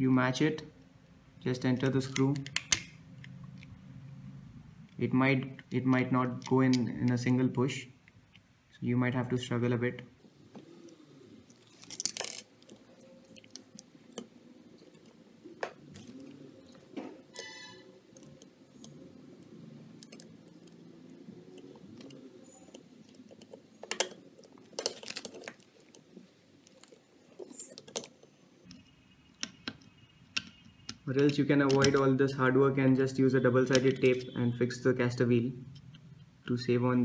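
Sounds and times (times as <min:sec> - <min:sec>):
small metal parts clicking: 0:11.5 - 0:13.9, 0:20.0 - 0:26.0, 0:26.6 - 0:28.9, 0:33.7 - 0:34.4
brief ringing tone: 0:17.4 - 0:17.8.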